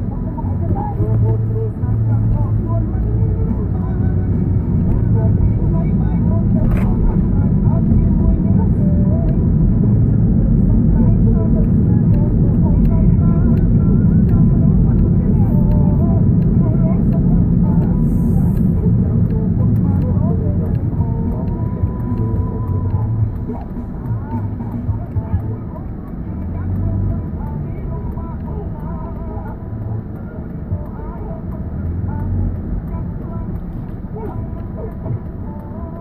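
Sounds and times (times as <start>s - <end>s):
car engine and road noise: 0.0s - 36.0s.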